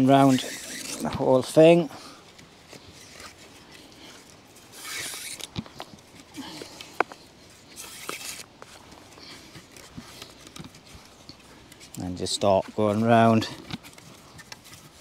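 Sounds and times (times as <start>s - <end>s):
cord rasping around wooden poles: 0.0s - 15.0s
light clicks and knocks from poles: 0.0s - 15.0s.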